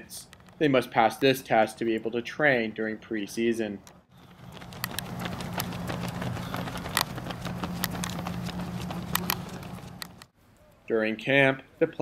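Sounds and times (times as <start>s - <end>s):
runners' footsteps on a track: 4.1s - 10.3s
low hum: 4.2s - 10.3s.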